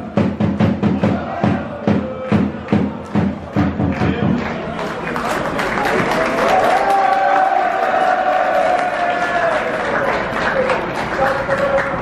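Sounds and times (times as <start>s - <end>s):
crowd noise: 0.0s - 12.0s
football crowd chanting: 0.9s - 4.4s.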